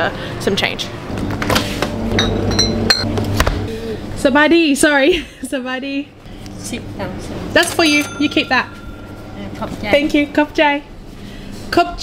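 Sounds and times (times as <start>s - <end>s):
glass bottles clinking: 2.2s - 3.0s, 7.6s - 9.7s.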